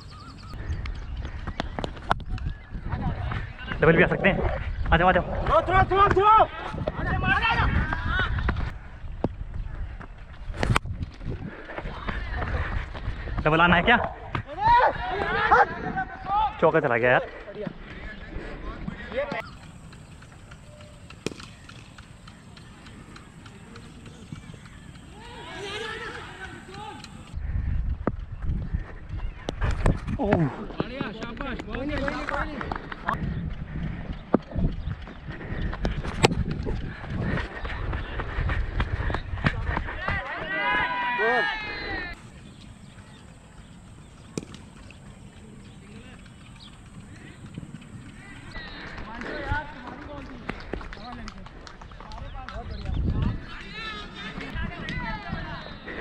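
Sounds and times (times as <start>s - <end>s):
wind buffeting microphone: 0.0s - 56.0s
sharp crack: 20.5s - 23.9s
distant shouts of players: 25.1s - 27.3s.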